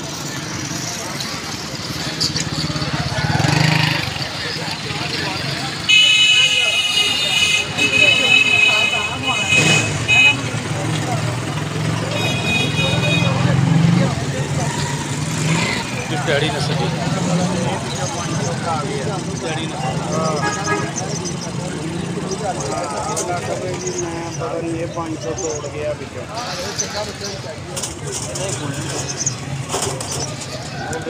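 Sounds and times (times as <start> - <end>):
voices: 0.0 - 31.0
vehicle horn honking: 5.9 - 10.6, 12.1 - 13.5.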